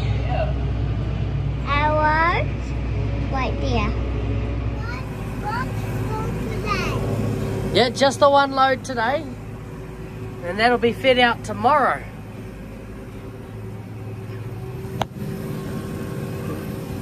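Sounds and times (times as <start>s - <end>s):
tractor engine drone: 0.0s - 17.0s.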